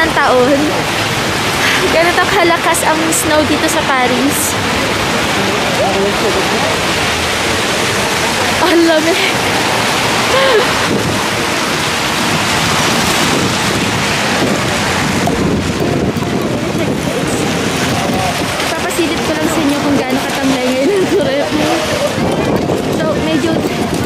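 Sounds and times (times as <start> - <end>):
people talking: 0.0 - 1.0, 1.6 - 9.5, 10.3 - 11.0, 14.3 - 24.0
wind on microphone: 0.0 - 24.0.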